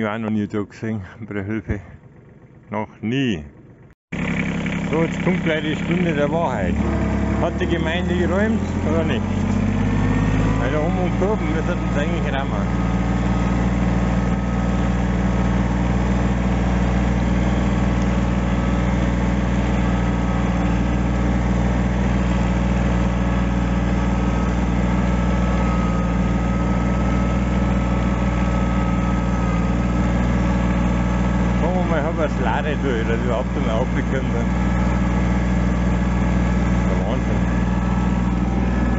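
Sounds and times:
tractor diesel engine running: 0.0 - 38.9.

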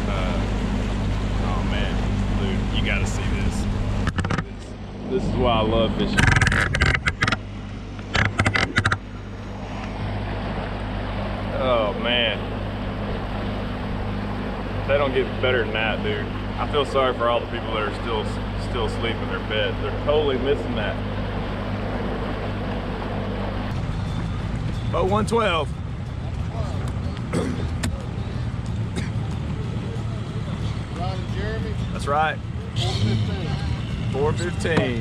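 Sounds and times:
water wash: 0.0 - 32.3
outboard motor humming: 0.0 - 35.0
knocking or buffeting sounds: 6.0 - 9.1.

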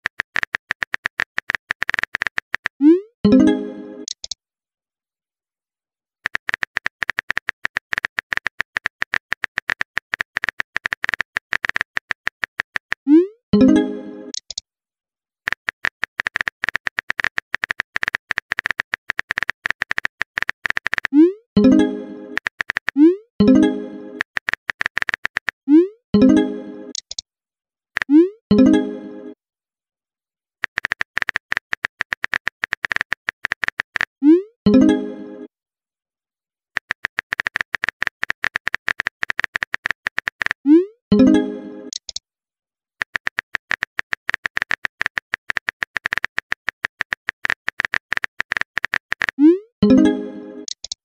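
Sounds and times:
phone keyboard typing clicks: 0.0 - 2.8, 4.0 - 4.4, 6.2 - 13.1, 15.5 - 23.0, 24.1 - 25.6, 30.6 - 34.2, 36.8 - 40.6, 41.9 - 42.2, 43.0 - 49.4, 50.0 - 51.0.

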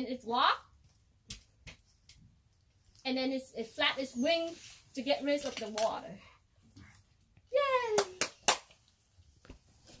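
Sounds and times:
hands clapping: 7.8 - 8.9.

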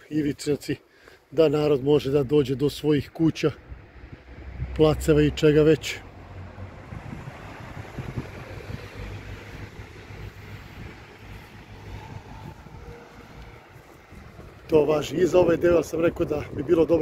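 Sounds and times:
car engine and tyre rumble: 1.1 - 17.0
wind noise on microphone: 3.6 - 5.4, 6.1 - 17.0.

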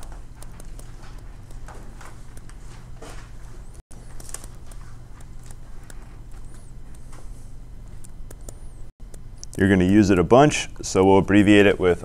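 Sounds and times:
stylus tapping and scratching on screen: 0.0 - 10.8
steady low hum: 0.0 - 12.0.

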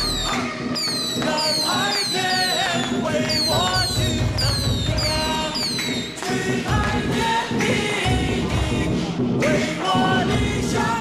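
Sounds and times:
ritual chanting with music: 0.0 - 11.0.

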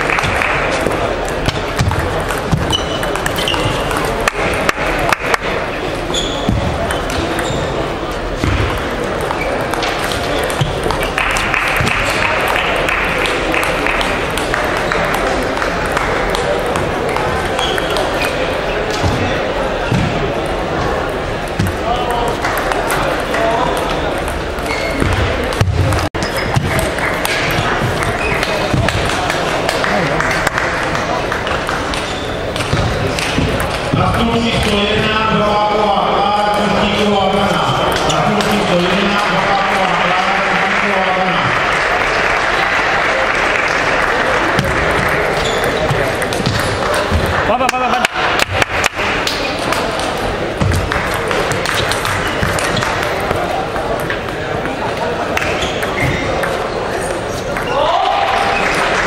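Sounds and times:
busy sports hall din: 0.0 - 59.0
murmur of voices: 0.0 - 59.0
table tennis balls ticking: 0.1 - 35.5, 36.4 - 39.3, 44.4 - 57.7.

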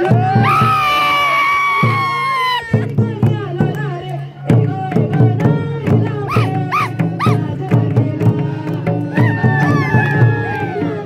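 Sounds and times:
regular drum beat: 4.5 - 10.4
short high calls: 6.3 - 7.4.

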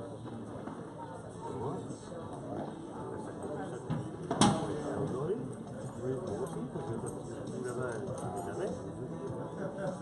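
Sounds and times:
murmur of spectators chatting: 0.0 - 10.0.

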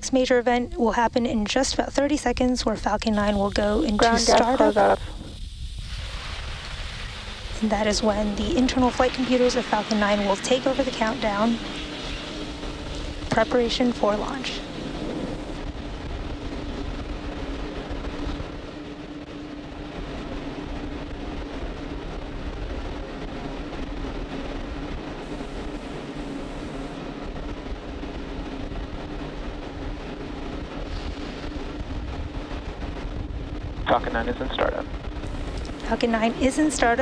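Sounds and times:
constant hum: 0.0 - 37.0
low rumble: 0.0 - 37.0
venting hiss: 2.8 - 15.7, 25.2 - 27.0, 35.2 - 37.0.

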